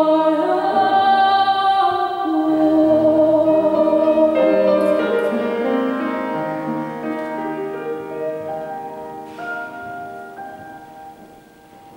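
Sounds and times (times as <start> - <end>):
piano notes: 0.0 - 11.9.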